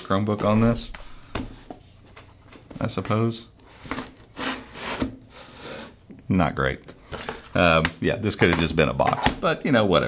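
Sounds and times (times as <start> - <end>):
laptop scraping on cardboard: 4.4 - 5.9.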